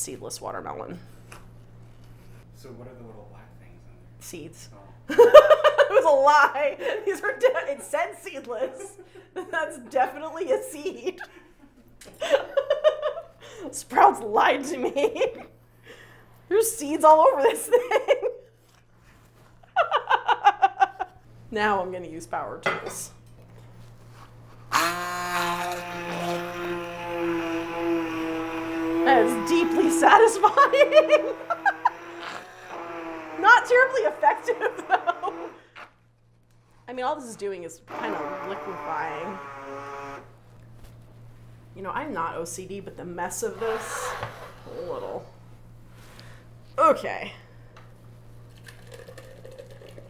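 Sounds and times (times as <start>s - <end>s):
immersion blender motor whining: 24.7s - 35.8s, 37.9s - 40.4s
juice pouring into blender jar: 48.5s - 50.0s.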